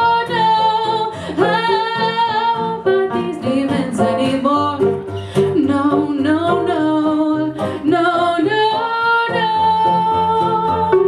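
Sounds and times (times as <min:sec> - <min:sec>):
electric piano: 0:00.0 - 0:11.0
guitar: 0:00.0 - 0:11.0
woman singing: 0:00.0 - 0:11.0.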